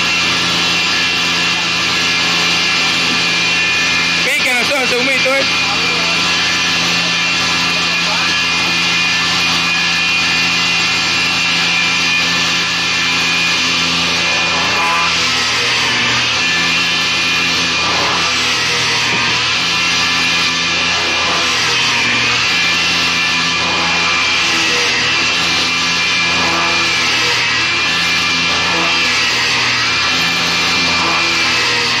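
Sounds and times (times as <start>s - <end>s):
auger bit boring into wood: 0.0s - 32.0s
electric motor running: 0.0s - 32.0s.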